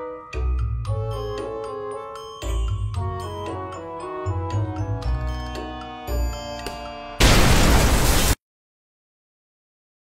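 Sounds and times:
explosion: 7.2s - 8.4s.

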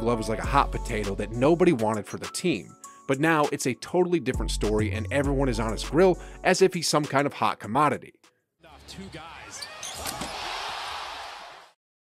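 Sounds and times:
arena crowd noise: 8.7s - 11.7s.

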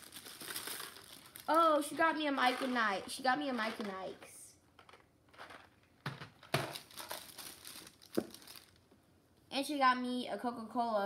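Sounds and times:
gift wrapping crinkling: 0.0s - 4.2s, 6.4s - 8.9s.

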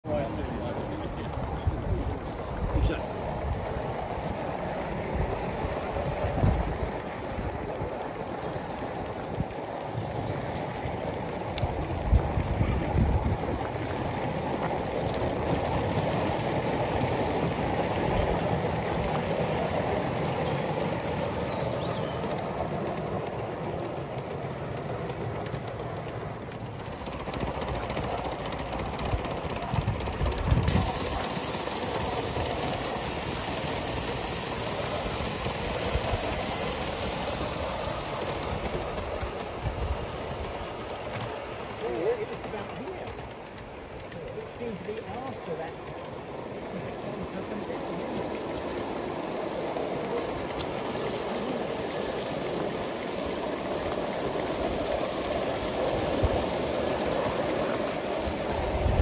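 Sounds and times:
model train wheels rumbling on rails: 0.0s - 59.0s
steady high hiss: 30.2s - 59.0s.

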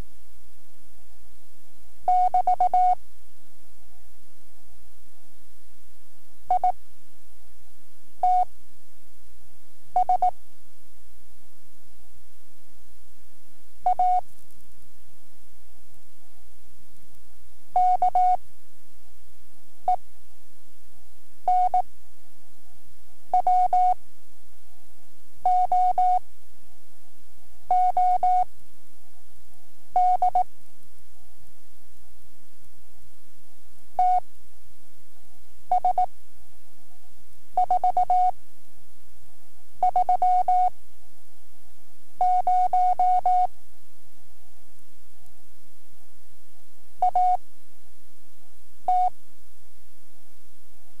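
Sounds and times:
tape hiss: 0.0s - 51.0s.

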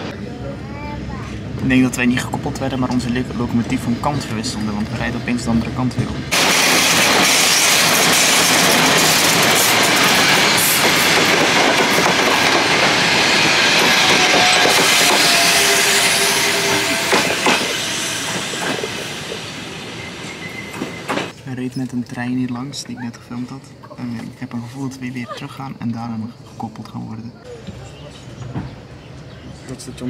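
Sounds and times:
train wheels rushing on rail: 1.2s - 21.4s
faint wheel squeal: 20.0s - 21.1s
rail joint clicks: 20.2s - 22.0s.

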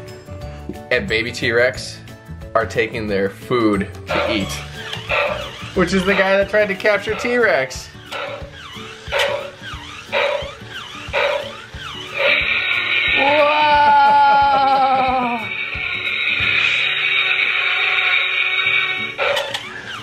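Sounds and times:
toy growl-like calls: 4.1s - 20.0s.

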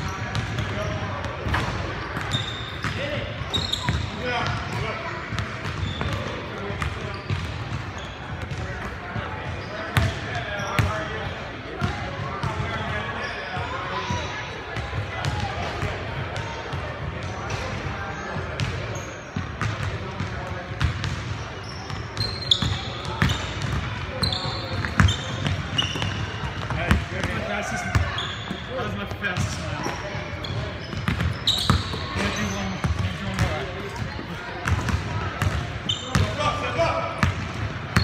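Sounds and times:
sneakers squeaking: 0.0s - 38.0s.

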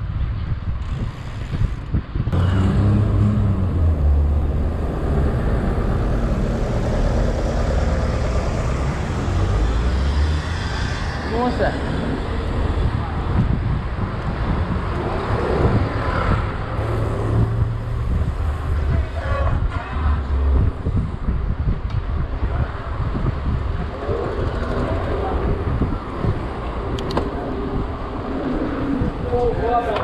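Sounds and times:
street traffic: 0.0s - 30.0s
wind buffeting microphone: 0.0s - 30.0s.

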